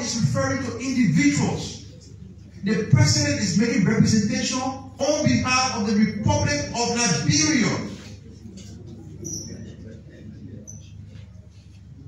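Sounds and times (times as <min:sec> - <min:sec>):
steady low hum: 0:00.0 - 0:12.0
faint high-pitched squeaks: 0:09.2 - 0:09.7.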